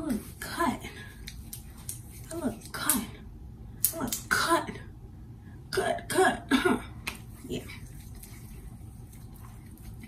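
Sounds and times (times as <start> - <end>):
young woman coughing: 6.1 - 6.9.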